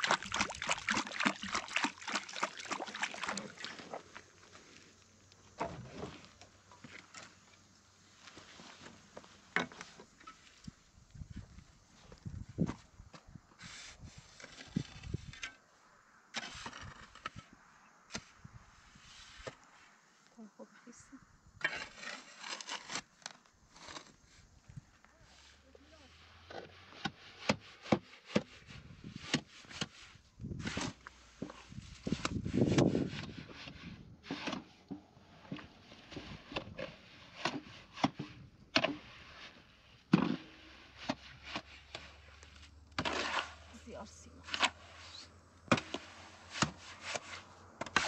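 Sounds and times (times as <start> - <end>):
wet mortar slapping: 0.0 - 4.0, 43.0 - 43.7
shovel scraping wheelbarrow tray: 13.6 - 15.6, 16.3 - 19.6, 21.6 - 24.5, 25.2 - 48.0.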